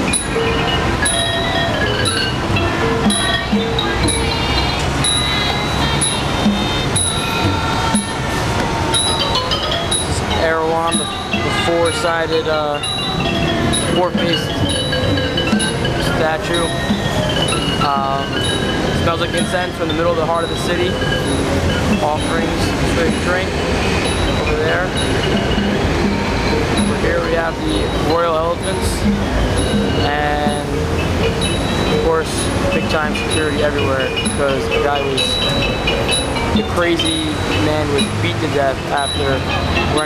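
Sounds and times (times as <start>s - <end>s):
drum: 0.0s - 12.1s, 12.8s - 40.0s
low rumble of city noise: 0.0s - 40.0s
melodic lines: 0.0s - 40.0s.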